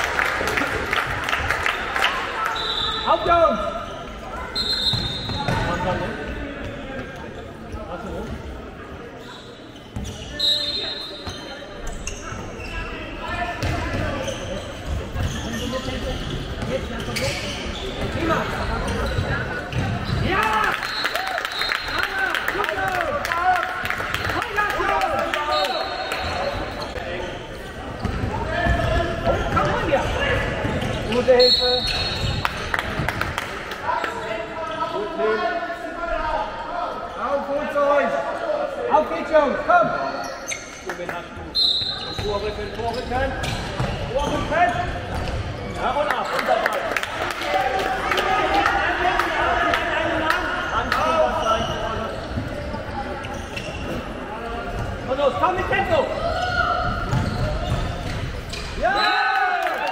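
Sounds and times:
echoing chatter: 0:00.0 - 0:59.9
ball bouncing on hall floor: 0:57.0 - 0:58.8.

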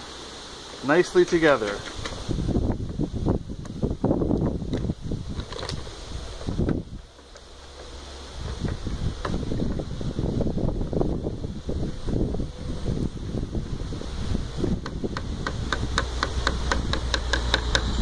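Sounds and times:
wind buffeting microphone: 0:01.9 - 0:18.0.

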